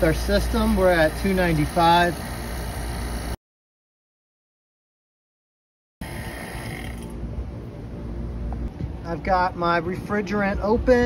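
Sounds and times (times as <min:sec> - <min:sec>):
vacuum pump running: 0:00.0 - 0:03.4, 0:06.0 - 0:07.2.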